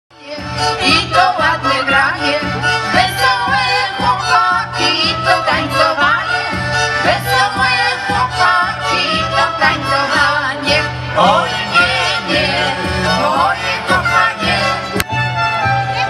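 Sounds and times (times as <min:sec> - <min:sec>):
folk band with fiddles: 0:00.1 - 0:16.0.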